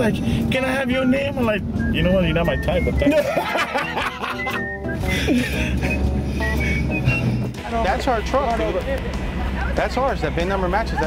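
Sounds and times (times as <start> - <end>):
background music: 0.0 - 11.0
man laughing: 2.9 - 6.9, 10.8 - 11.0.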